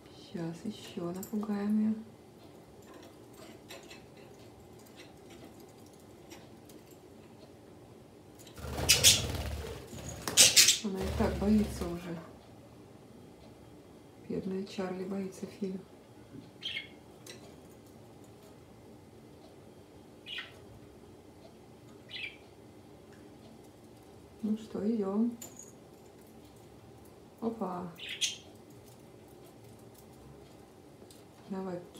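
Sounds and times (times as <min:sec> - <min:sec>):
bird wings flapping: 0:08.6 - 0:12.0.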